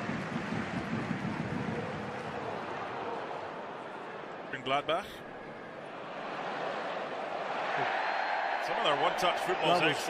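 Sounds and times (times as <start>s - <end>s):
murmur of stadium crowd: 0.0s - 10.0s.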